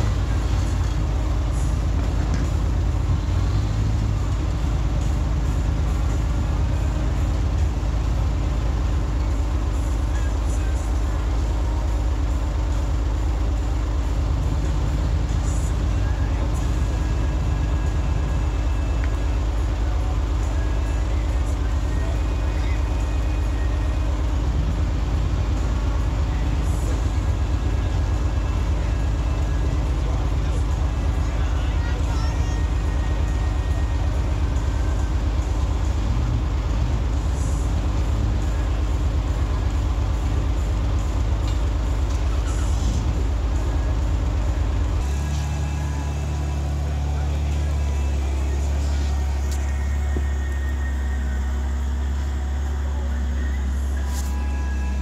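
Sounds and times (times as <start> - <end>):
vehicle engine running at low revs: 0.0 - 55.0.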